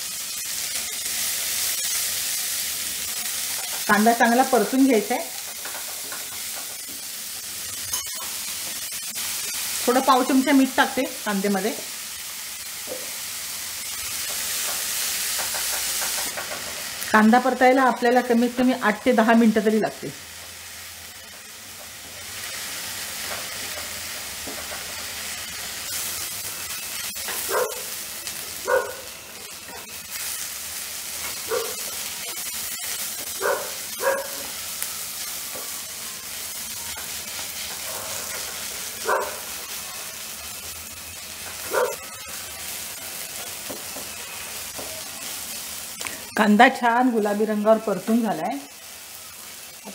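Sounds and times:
onions sizzling in oil: 0.0s - 49.9s.

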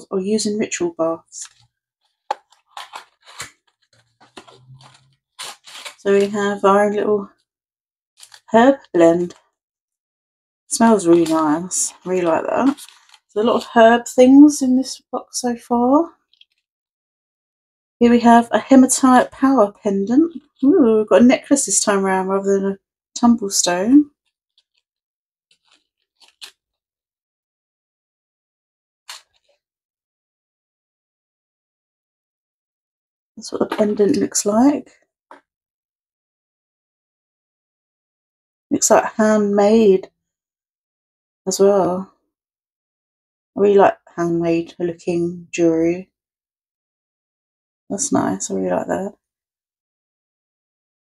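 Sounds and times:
paper crinkling: 1.4s - 6.5s, 8.2s - 8.5s, 11.0s - 13.7s, 25.5s - 26.6s
paper bag scraping and rustling: 2.3s - 6.4s.

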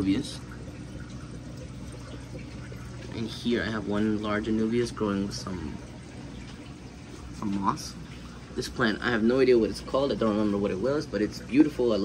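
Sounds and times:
pump humming: 0.0s - 12.0s
water draining through plumbing: 0.0s - 12.0s.

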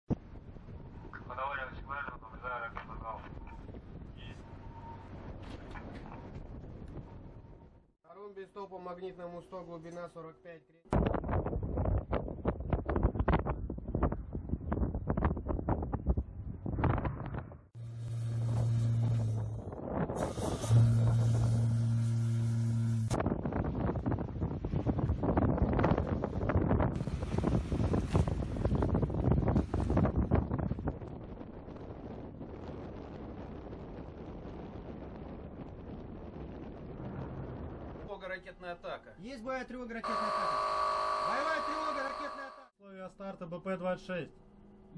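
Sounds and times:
wind buffeting microphone: 2.8s - 7.8s, 11.0s - 17.8s, 23.2s - 38.1s
steady low hum: 17.8s - 23.2s.

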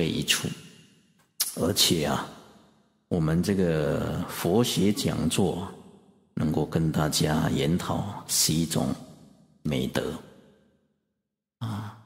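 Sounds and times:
man speaking in echoing hall: 0.0s - 0.6s, 1.4s - 9.1s, 9.7s - 10.2s.

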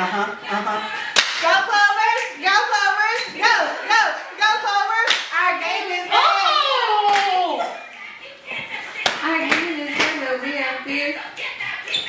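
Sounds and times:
hand claps: 1.2s - 1.4s, 5.0s - 5.3s, 7.0s - 7.4s, 9.0s - 10.2s.

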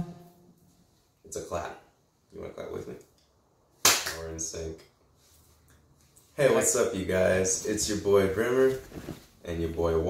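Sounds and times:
sharp hand clap: 3.8s - 4.3s.

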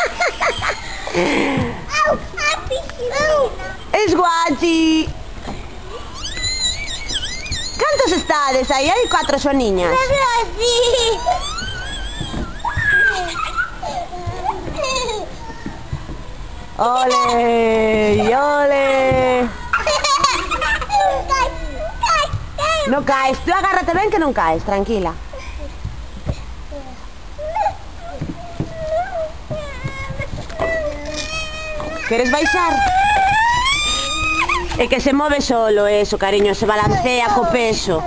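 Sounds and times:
toddlers squealing and laughing: 0.0s - 3.9s, 5.7s - 15.9s, 19.1s - 23.0s, 26.7s - 35.0s, 36.8s - 38.0s.

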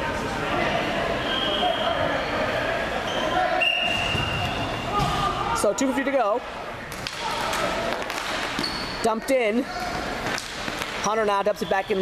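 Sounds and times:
players' voices and chatter: 0.0s - 12.0s.

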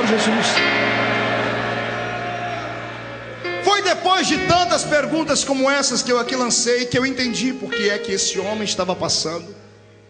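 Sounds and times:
congregation shouting: 0.0s - 5.1s
sustained keyboard chord: 0.1s - 10.0s.

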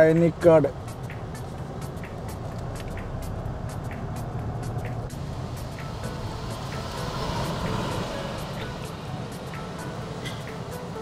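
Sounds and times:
music with ticking beat: 0.0s - 11.0s
road vehicle rumble: 0.0s - 11.0s.

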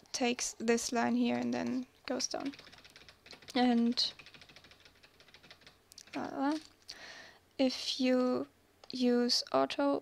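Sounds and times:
computer keyboard clicking: 2.3s - 6.7s.

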